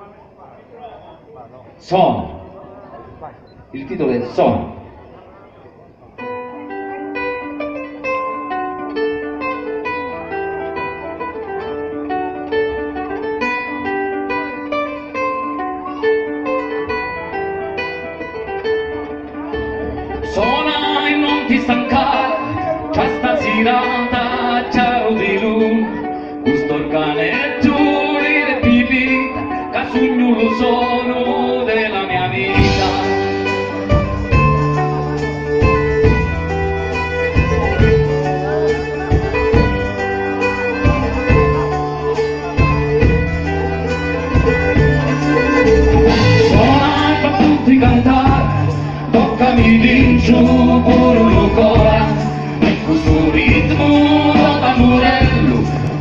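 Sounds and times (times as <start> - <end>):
picked guitar: 0.0 - 56.0
rhythmic strummed instruments: 6.0 - 56.0
deep bass: 32.4 - 56.0.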